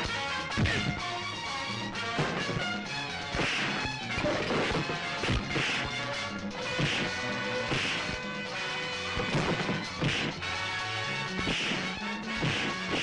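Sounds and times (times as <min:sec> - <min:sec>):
background music: 0:00.0 - 0:13.0
punch whacks and crashes: 0:09.2 - 0:10.3, 0:11.4 - 0:13.0.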